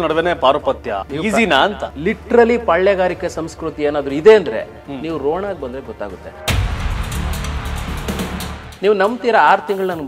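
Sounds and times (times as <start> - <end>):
man speaking: 0.0 - 6.5
music: 0.0 - 10.0
deep cinematic boom: 6.5 - 8.8.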